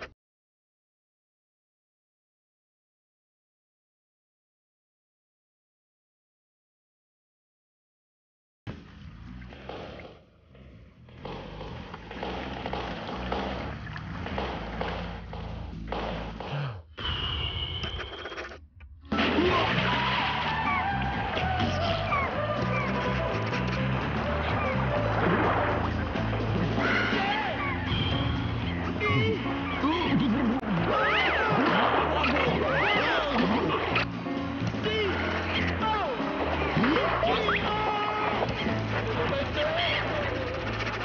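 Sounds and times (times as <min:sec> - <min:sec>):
background music: 0:08.7 - 0:16.9, 0:18.6 - 0:41.0.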